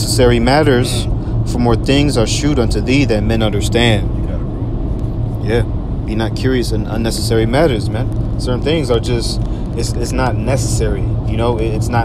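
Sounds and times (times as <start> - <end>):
person speaking: 0.0 - 4.5, 5.4 - 12.0
steady low rumble: 0.0 - 12.0.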